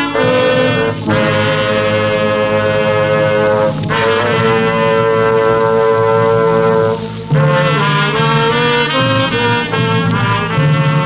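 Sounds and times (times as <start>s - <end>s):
brass section holding a note: 0.0s - 11.0s.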